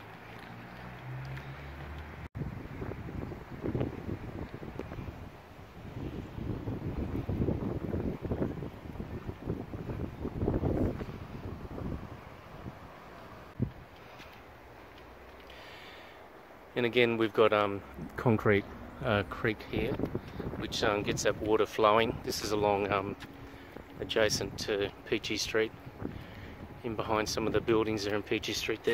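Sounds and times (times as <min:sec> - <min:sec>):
wind buffeting microphone: 0:02.3 - 0:14.0, 0:17.8 - 0:28.9.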